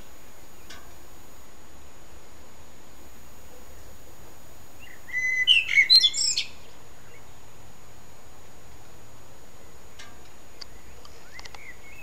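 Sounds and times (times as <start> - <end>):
songbird chirping: 0.0 - 1.1, 3.4 - 7.7, 9.5 - 12.0.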